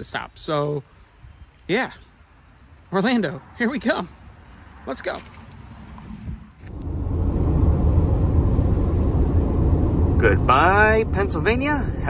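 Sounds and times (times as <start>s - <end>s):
outdoor ambience: 0.0s - 12.0s
car cabin road noise: 6.6s - 12.0s.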